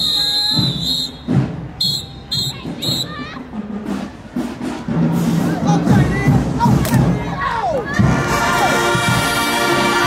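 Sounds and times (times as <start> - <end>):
shrill whistle blast: 0.0 - 3.2.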